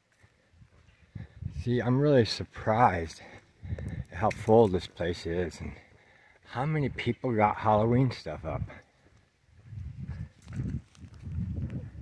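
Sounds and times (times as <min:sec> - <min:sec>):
footsteps on paved road: 0:00.0 - 0:07.0, 0:07.9 - 0:12.0.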